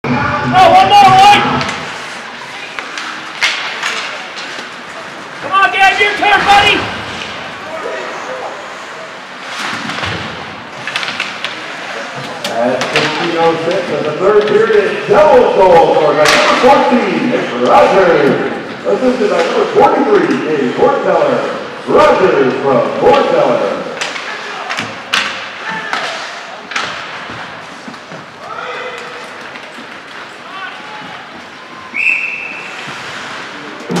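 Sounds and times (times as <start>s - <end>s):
echoing shouts: 0.0s - 1.9s, 5.4s - 7.0s, 28.4s - 29.4s, 30.4s - 32.6s
crowd voices: 0.0s - 34.0s
skates scraping on ice: 1.5s - 14.2s, 25.6s - 34.0s
puck and sticks knocking boards: 12.2s - 14.6s, 24.0s - 28.3s.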